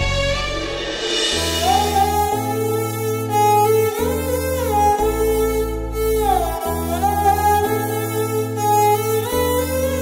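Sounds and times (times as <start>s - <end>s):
held bass notes: 0.0s - 10.0s.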